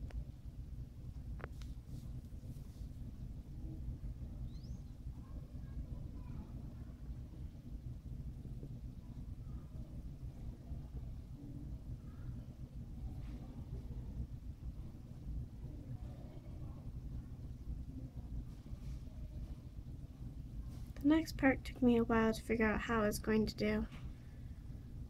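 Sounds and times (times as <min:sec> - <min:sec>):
low background rumble: 0:00.0 - 0:25.0.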